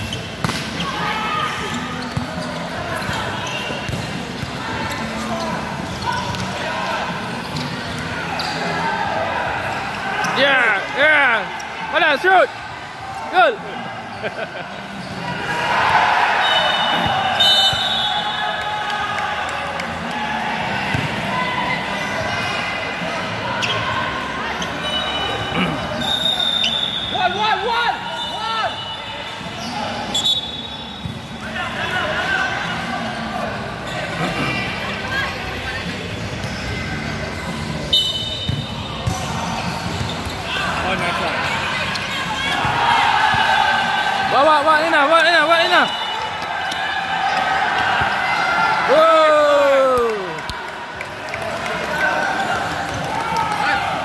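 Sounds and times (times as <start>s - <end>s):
people shouting in echoing hall: 40.4s - 54.0s.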